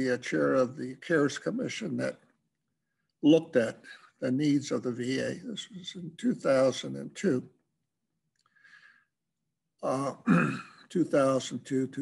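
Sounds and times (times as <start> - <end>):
man speaking: 0.0 - 2.2, 3.2 - 7.6, 9.8 - 12.0
man breathing: 8.4 - 9.1.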